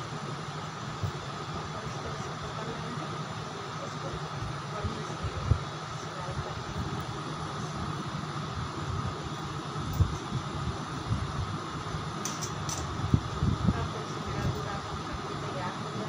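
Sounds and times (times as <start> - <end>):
low background hum: 0.0 - 16.0.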